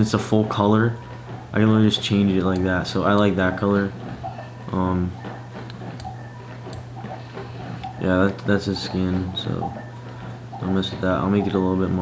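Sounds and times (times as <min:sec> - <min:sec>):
low electrical hum: 0:00.0 - 0:12.0
computer mouse clicks: 0:05.2 - 0:09.0.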